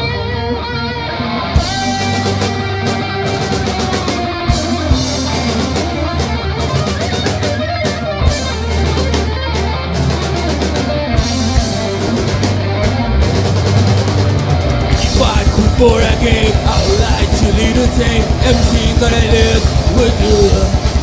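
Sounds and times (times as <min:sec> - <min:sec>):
metal band playing live: 0:00.0 - 0:21.0
drum and cymbal hits: 0:10.2 - 0:21.0.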